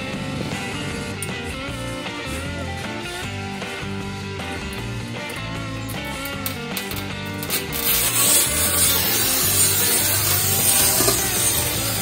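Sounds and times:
background music: 0:00.0 - 0:12.0
tile cutter scoring wheel scratching: 0:07.5 - 0:12.0.

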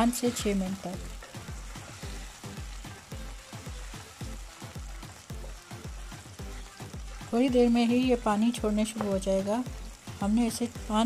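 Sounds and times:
background music with low beat: 0:00.0 - 0:11.0
meat sizzling in a wok: 0:00.0 - 0:11.0.

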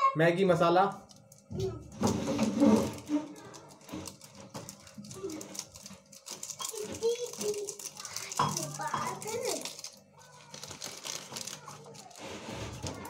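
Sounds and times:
sachet crinkling rustle: 0:02.2 - 0:13.0.

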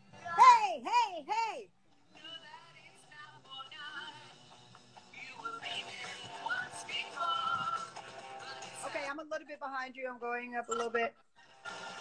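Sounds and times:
tv theme song with singing: 0:00.0 - 0:09.2.

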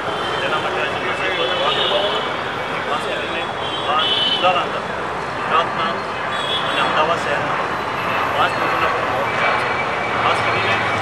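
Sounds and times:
street traffic noise: 0:00.0 - 0:11.0
man speaking into microphones: 0:00.3 - 0:06.1, 0:06.7 - 0:07.6, 0:08.3 - 0:11.0.

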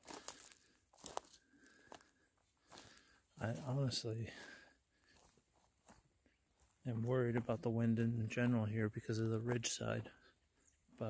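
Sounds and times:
footsteps crunching on dry ground: 0:00.0 - 0:11.0.

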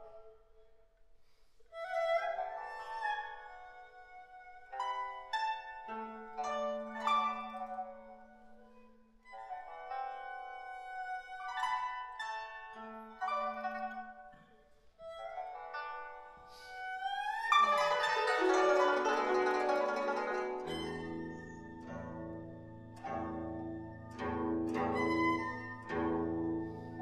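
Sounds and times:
plucked string notes: 0:17.2 - 0:27.0.

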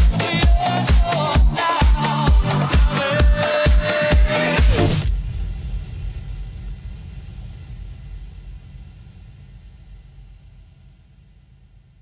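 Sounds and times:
loud house music: 0:00.0 - 0:05.1
low deep rumble: 0:04.6 - 0:12.0.

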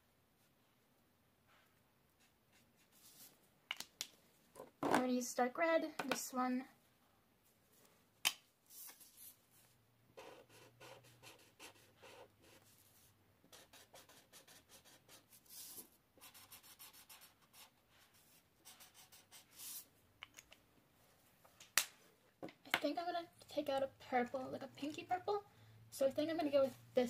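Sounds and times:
marker scratching on paper: 0:02.2 - 0:03.3, 0:10.2 - 0:19.9.

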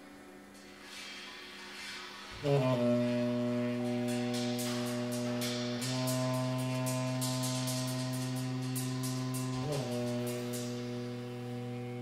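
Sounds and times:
saxophone holding low note: 0:02.4 - 0:12.0.

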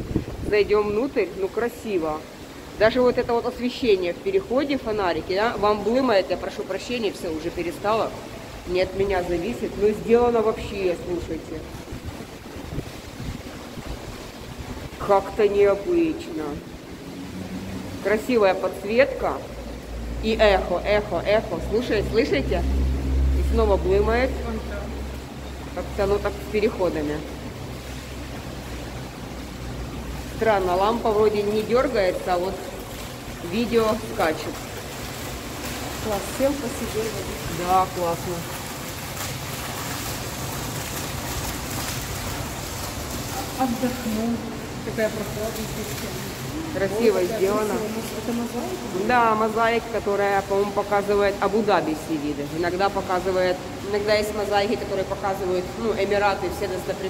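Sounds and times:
fountain water splashing into pool: 0:00.0 - 0:57.0.

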